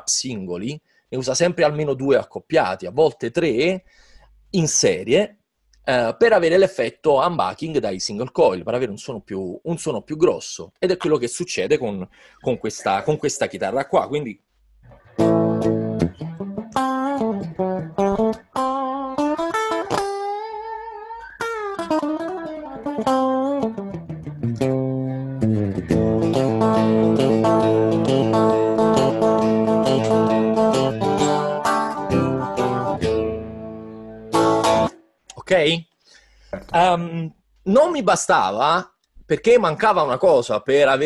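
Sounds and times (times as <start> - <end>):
electric guitar lead line: 14.9 - 35.0
electric guitar picked chords: 15.0 - 35.0.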